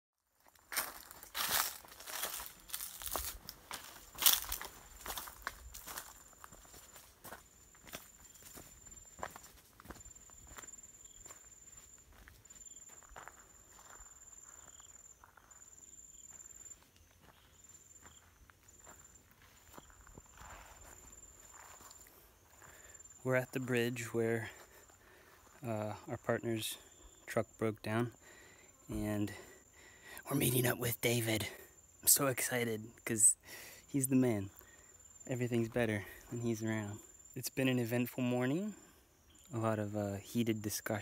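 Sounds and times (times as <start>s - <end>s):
footsteps on dry ground and brush: 0.4s - 25.7s
high insect trill: 0.4s - 41.0s.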